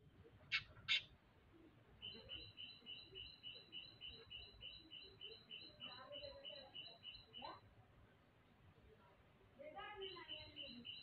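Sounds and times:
bird chirping: 0:02.0 - 0:07.6, 0:10.0 - 0:11.0.

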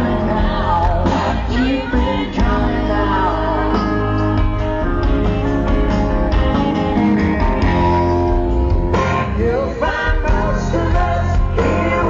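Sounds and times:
live band music with heavy bass: 0:00.0 - 0:12.0.

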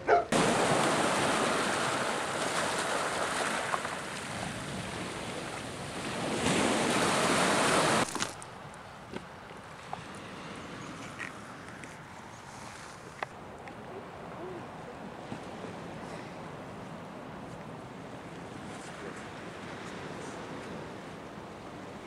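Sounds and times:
waves breaking on shingle: 0:00.4 - 0:10.0.

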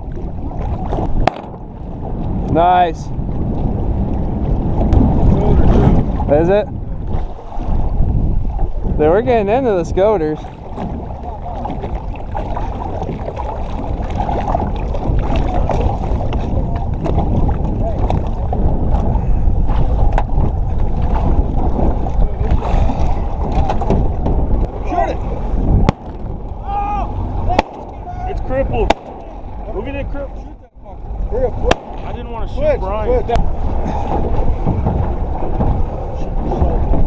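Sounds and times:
wind and water rumble: 0:00.0 - 0:37.0
boat hull and gear knocks: 0:23.4 - 0:24.7, 0:33.4 - 0:37.0.

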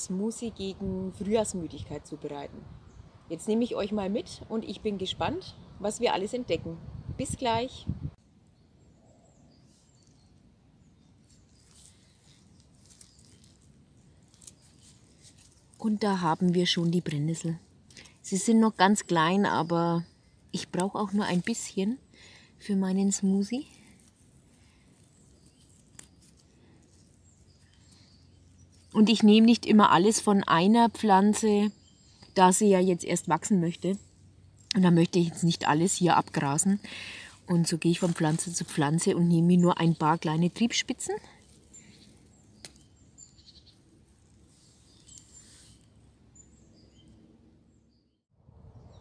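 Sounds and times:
faint songbirds chirping: 0:00.0 - 0:49.0
faint plant stem snap: 0:42.6 - 0:42.9.

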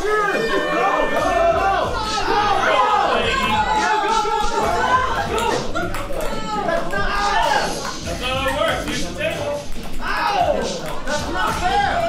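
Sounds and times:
people shouting: 0:00.0 - 0:08.7, 0:09.9 - 0:12.0
ping pong balls bouncing: 0:04.5 - 0:12.0.

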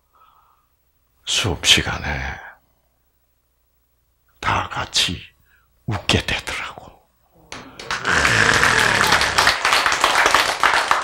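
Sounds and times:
people laughing: 0:07.5 - 0:09.7
people clapping: 0:07.5 - 0:11.0.

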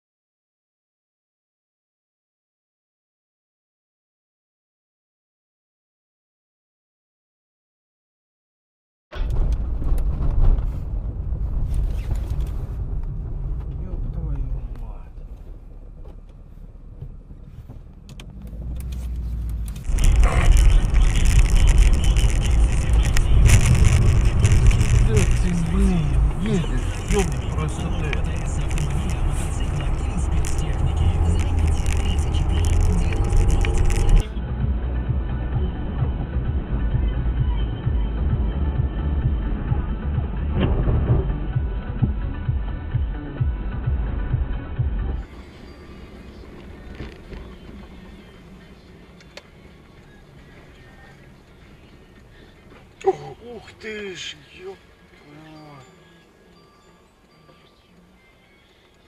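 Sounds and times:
car engine and road rumble: 0:09.1 - 0:59.0.

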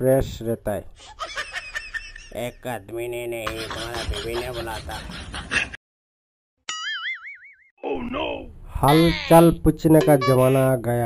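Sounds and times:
cartoon boing sound effect: 0:06.7 - 0:08.1.

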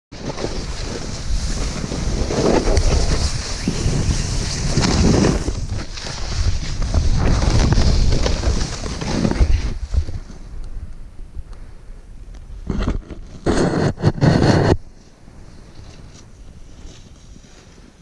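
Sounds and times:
snowboard sliding over snow: 0:00.2 - 0:10.6, 0:12.7 - 0:18.0
wind buffeting microphone: 0:00.3 - 0:11.6.

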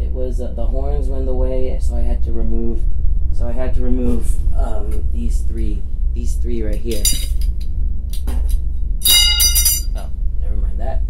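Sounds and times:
steady low hum: 0:00.0 - 0:11.0
light clink: 0:06.9 - 0:07.5, 0:09.0 - 0:10.0.

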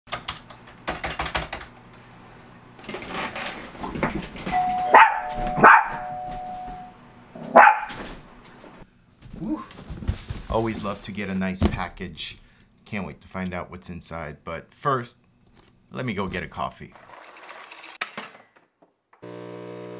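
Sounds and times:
two-note doorbell chime: 0:04.5 - 0:07.0
dog barking: 0:04.9 - 0:06.2, 0:07.4 - 0:08.0.

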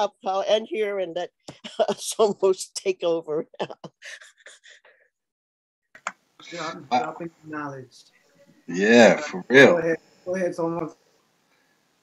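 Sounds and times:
woman's breathy laughter: 0:03.6 - 0:04.9.

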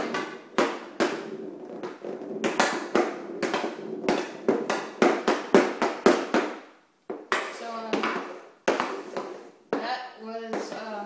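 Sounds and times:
hockey stick and ball clacking: 0:00.0 - 0:11.0.

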